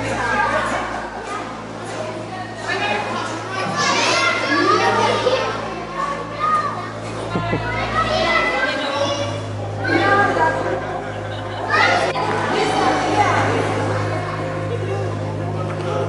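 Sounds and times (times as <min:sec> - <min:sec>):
adults talking: 0:00.0 - 0:16.0
children calling out and chattering: 0:00.0 - 0:16.0
steady low hum: 0:00.0 - 0:16.0.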